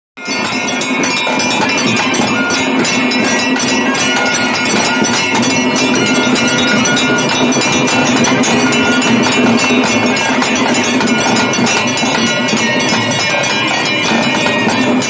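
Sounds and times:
rapid metallic bell ringing: 0:00.2 - 0:15.0
steady held tones: 0:00.2 - 0:15.0.

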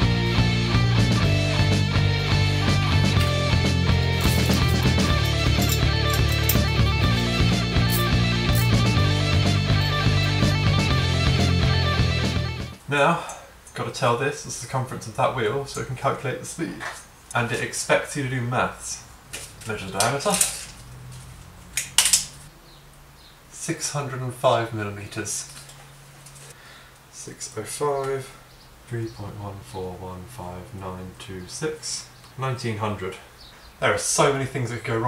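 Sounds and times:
rock music with guitar: 0:00.0 - 0:12.8
tape measure metallic clicks and rattles: 0:04.2 - 0:08.7, 0:21.8 - 0:22.4.

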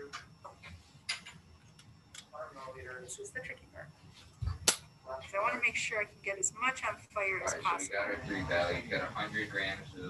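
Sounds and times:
person speaking: 0:05.2 - 0:10.0.

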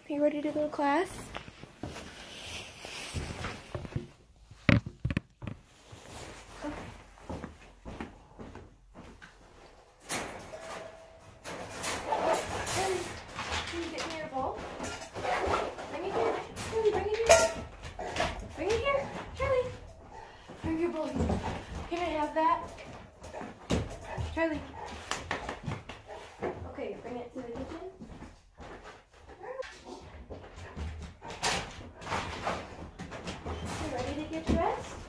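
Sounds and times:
short rustling noises: 0:01.1 - 0:04.7.

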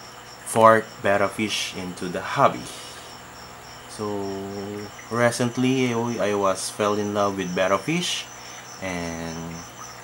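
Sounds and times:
cricket chirping: 0:00.0 - 0:10.0
person speaking: 0:00.5 - 0:03.2, 0:03.9 - 0:09.7.

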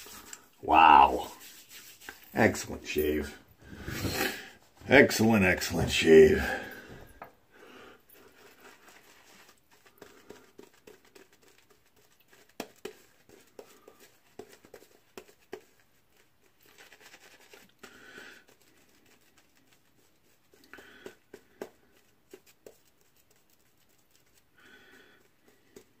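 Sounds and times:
shaving brush on lather: 0:00.0 - 0:03.4, 0:08.3 - 0:26.0.

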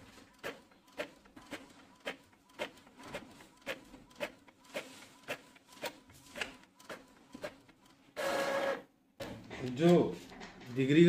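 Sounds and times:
printer motor whirring: 0:00.0 - 0:08.9
printer ticking: 0:00.0 - 0:08.9.

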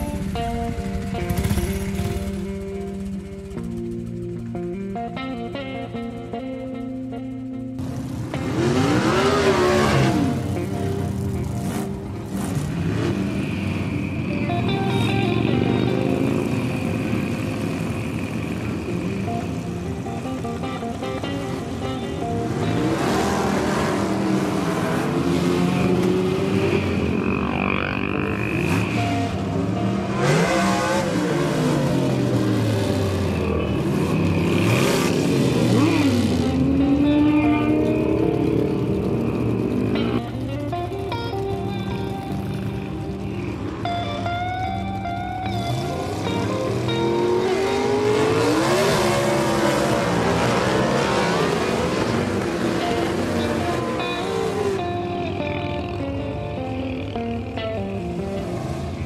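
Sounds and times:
motorcycles riding past: 0:00.0 - 0:59.0.

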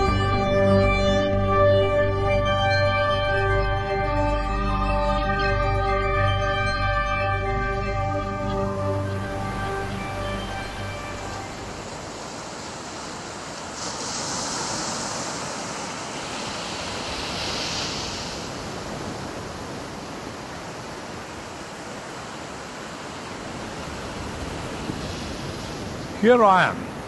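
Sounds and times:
ocean surf breaking waves: 0:08.8 - 0:27.0.

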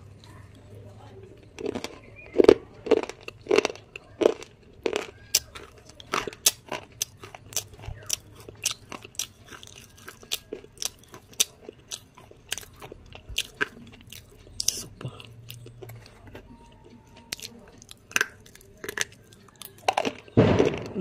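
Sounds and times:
pencil being chewed crunching: 0:03.0 - 0:20.3.

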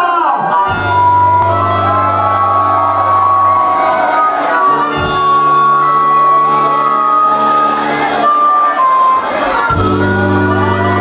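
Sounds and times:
crowd cheering and shouting: 0:00.0 - 0:11.0
punk rock band playing: 0:00.5 - 0:11.0.

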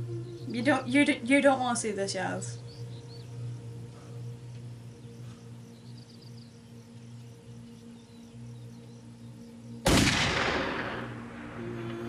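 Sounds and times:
low music drone: 0:00.0 - 0:12.0
gunshot: 0:09.9 - 0:11.5.

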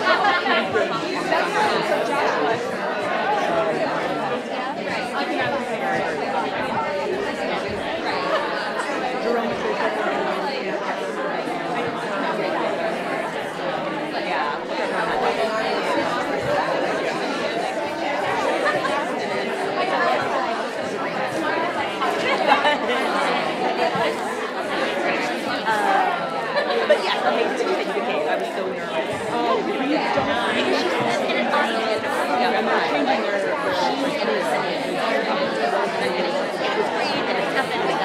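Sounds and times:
crowd chatter babble: 0:00.0 - 0:38.0.

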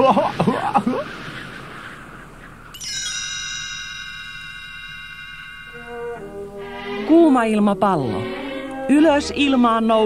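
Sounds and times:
soft hiss: 0:00.0 - 0:10.0
bright bell-like chime: 0:02.7 - 0:07.2.

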